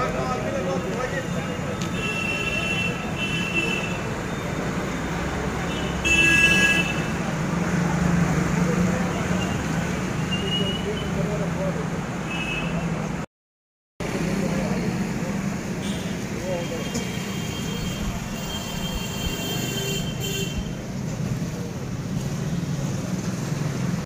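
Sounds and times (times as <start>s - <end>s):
street traffic: 0.0s - 13.3s, 14.0s - 24.0s
vehicle horns honking: 1.8s - 4.5s, 5.6s - 7.2s, 15.8s - 20.8s.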